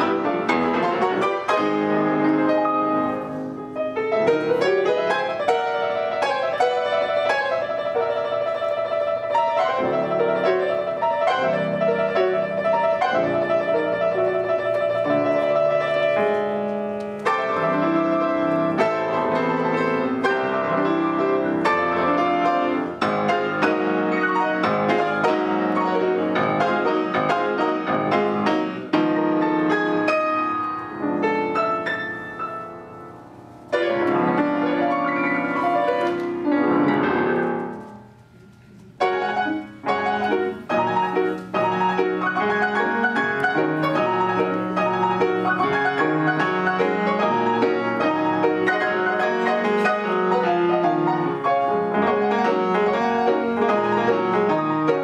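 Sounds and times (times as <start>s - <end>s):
piano duet: 0.0s - 55.0s.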